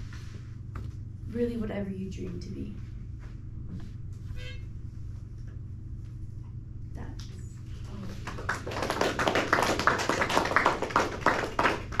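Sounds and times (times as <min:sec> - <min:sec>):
low room hum: 0:00.0 - 0:12.0
small audience clapping: 0:07.2 - 0:12.0.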